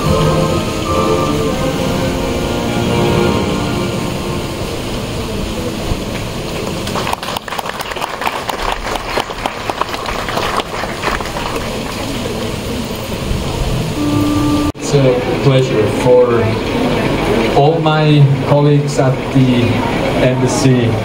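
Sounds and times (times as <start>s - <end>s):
crowd of guests: 0.0s - 21.0s.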